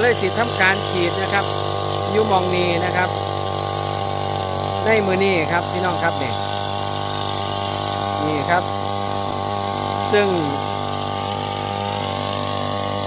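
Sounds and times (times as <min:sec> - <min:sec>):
crop sprayer engine humming: 0:00.0 - 0:13.0.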